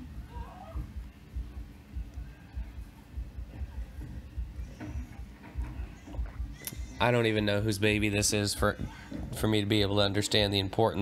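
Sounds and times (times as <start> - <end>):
faint movie soundtrack: 0.0 - 11.0.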